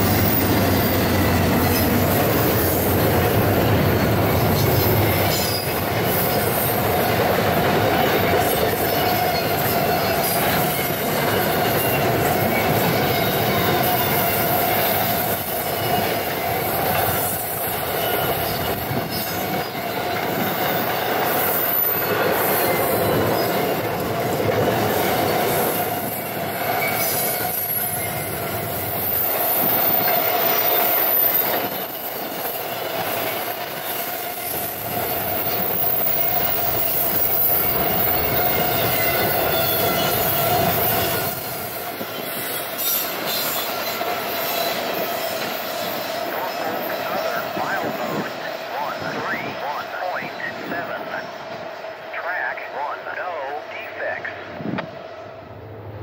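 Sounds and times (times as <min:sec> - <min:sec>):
diesel locomotive hum: 0:00.0 - 0:19.1
train wheels rumbling on rail: 0:00.0 - 0:49.6.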